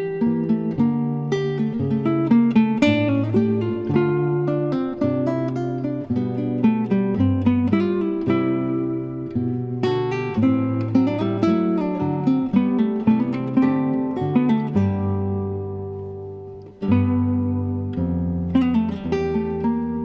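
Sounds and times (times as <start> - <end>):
acoustic guitar plucking: 0.0 - 20.0.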